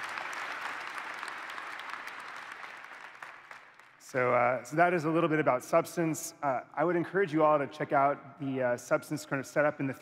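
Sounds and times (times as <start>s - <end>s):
audience applauding: 0.0s - 4.1s.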